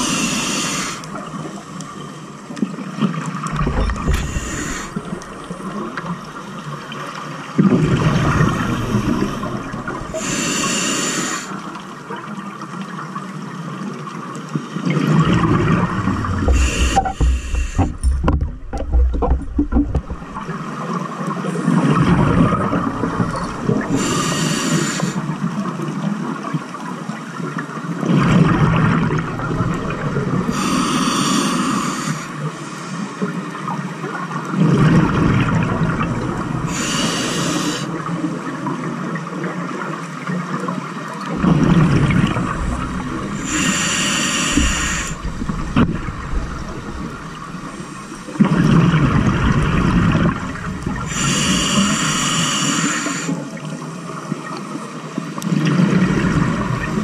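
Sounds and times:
hissing regulator inhale: 0.0 - 1.6, 3.6 - 5.5, 8.3 - 11.6, 16.3 - 20.2, 23.3 - 25.3, 30.4 - 33.3, 36.6 - 38.0, 42.5 - 48.5, 51.0 - 53.4
low bubbling underwater: 15.2 - 20.7, 41.4 - 43.8, 44.6 - 51.3.

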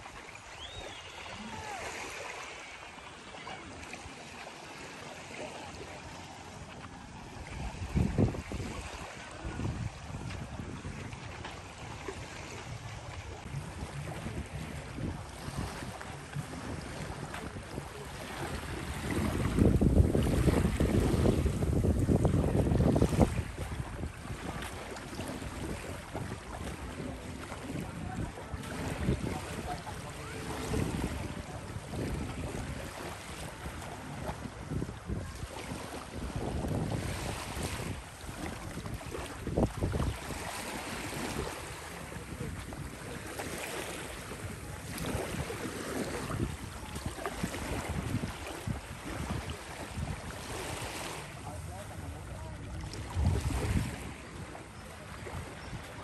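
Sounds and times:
waves lapping on shore: 0.0 - 56.0
wind buffeting microphone: 6.5 - 56.0.

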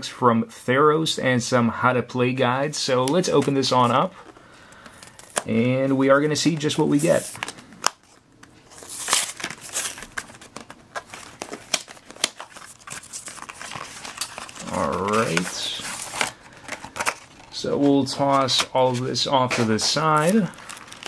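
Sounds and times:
packaging rustling and crinkling: 3.2 - 5.5, 6.6 - 21.0.

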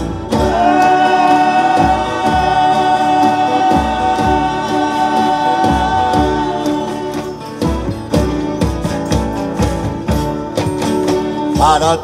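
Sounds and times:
strummed acoustic guitars: 0.0 - 12.0
group singing a held chord: 0.2 - 7.4.

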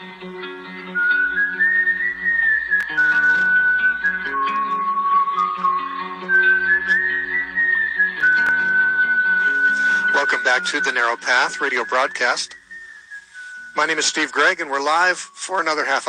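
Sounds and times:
plucked acoustic guitar: 0.0 - 12.6
whistled melody: 0.0 - 16.0.

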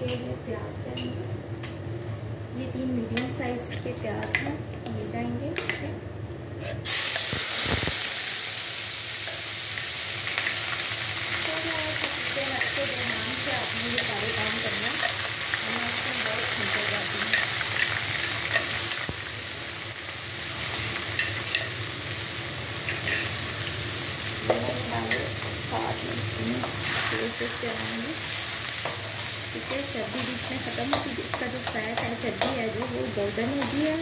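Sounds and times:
onions sizzling in oil: 6.8 - 34.0.

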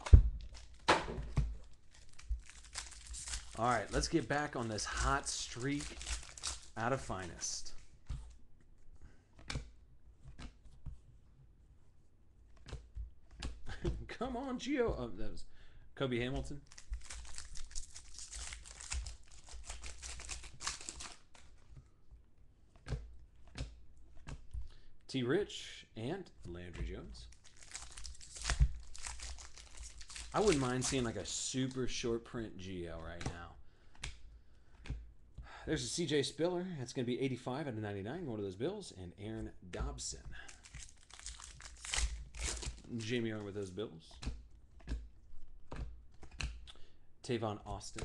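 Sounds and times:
wrapper crinkling: 0.0 - 0.9, 1.5 - 7.7, 16.6 - 21.6, 27.2 - 31.8, 40.4 - 43.5.

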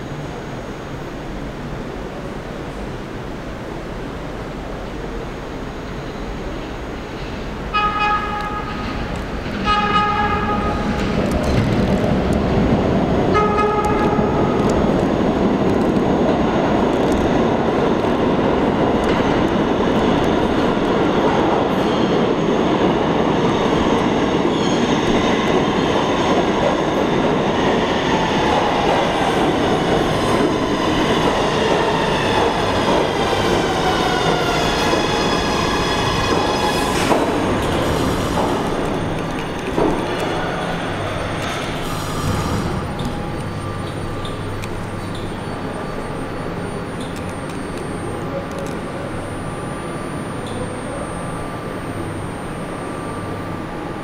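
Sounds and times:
train running into station: 0.0 - 54.0
train propulsion whine: 5.6 - 54.0
subway train horn blasts: 7.4 - 11.2, 13.2 - 14.9.

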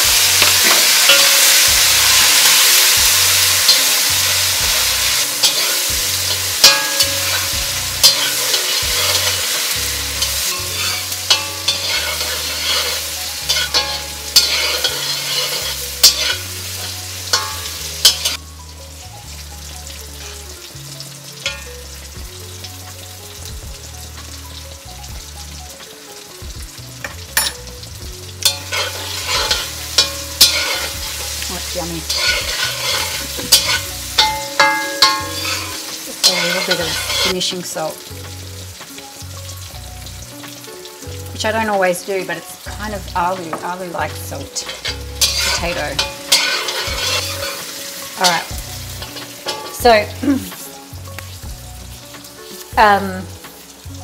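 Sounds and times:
metal spatula scraping pan: 0.0 - 18.4, 28.4 - 37.6, 43.5 - 50.2
tomato sizzling in hot oil: 0.0 - 54.0.

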